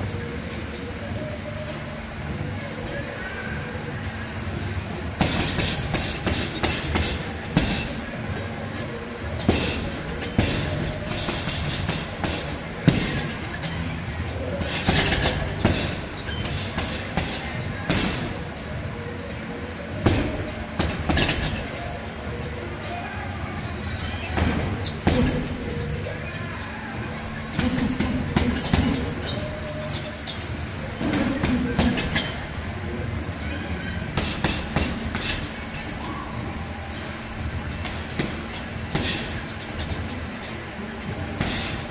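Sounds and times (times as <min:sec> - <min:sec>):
gloves punching heavy bag: 0:05.2 - 0:08.0, 0:09.4 - 0:13.4, 0:14.6 - 0:18.4, 0:34.2 - 0:35.5, 0:37.8 - 0:40.0.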